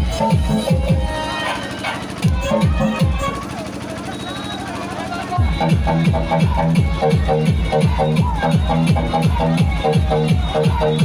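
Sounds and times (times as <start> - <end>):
loud dance music: 0.0 - 3.5, 5.3 - 11.0.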